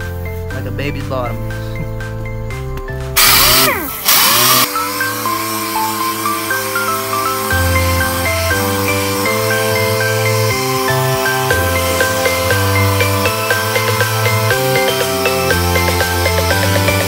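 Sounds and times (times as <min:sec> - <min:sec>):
background music: 0:00.0 - 0:17.0
orbital sander on car bumper: 0:03.2 - 0:17.0.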